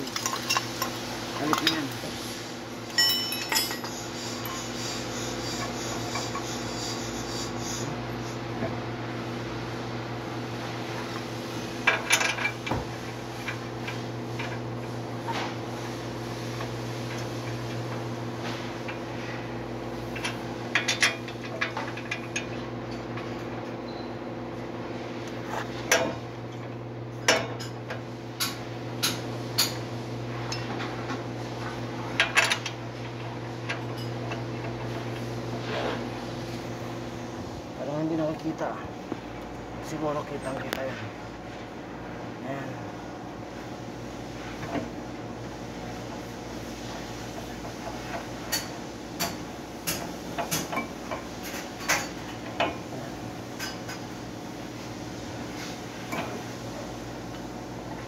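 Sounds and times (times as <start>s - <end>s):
steady low hum: 0.0s - 58.0s
metallic clinks of tools: 2.9s - 4.6s.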